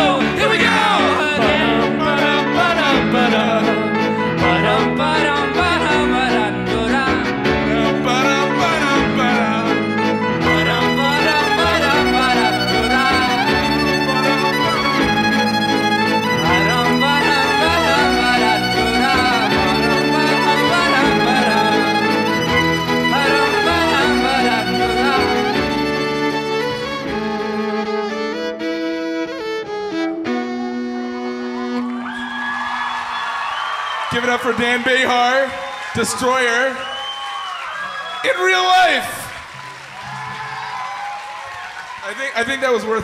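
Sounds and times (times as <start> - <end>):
bowed violin melody: 0.0 - 32.3
bass line: 0.0 - 32.6
live band music: 0.0 - 32.6.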